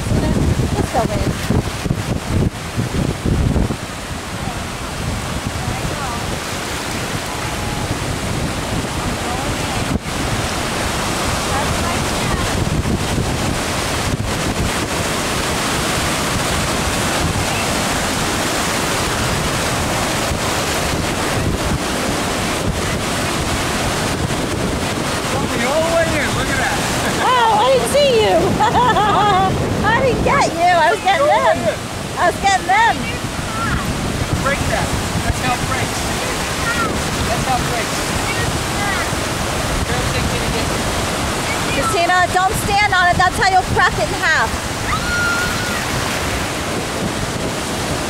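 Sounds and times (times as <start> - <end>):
ocean surf breaking: 0.0 - 48.0
wind buffeting microphone: 0.0 - 48.0.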